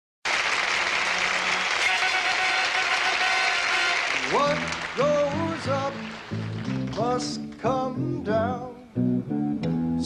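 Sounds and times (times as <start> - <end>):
audience applause: 0.2 - 7.5.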